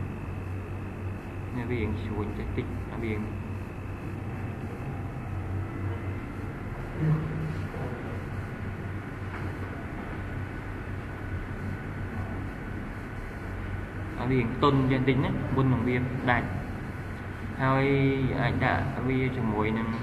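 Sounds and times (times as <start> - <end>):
low hum with hiss: 0.0 - 20.0.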